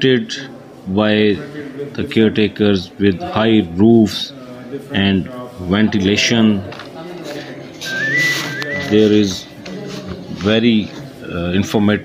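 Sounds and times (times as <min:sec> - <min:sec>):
two-note whistle: 0:07.9 - 0:08.9.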